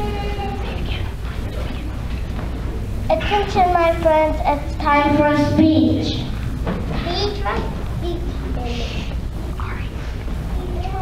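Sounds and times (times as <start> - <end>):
child speaking or singing: 0.0 - 1.0, 3.1 - 6.3, 7.0 - 9.8, 10.5 - 11.0.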